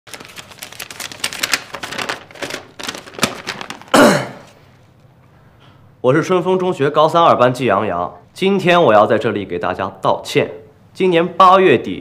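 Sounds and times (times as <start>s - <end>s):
paper crackling: 0.1s - 4.0s.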